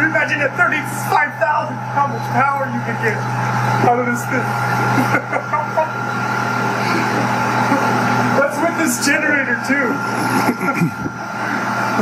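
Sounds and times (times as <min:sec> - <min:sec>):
turbine spinning a generator: 0:00.0 - 0:12.0.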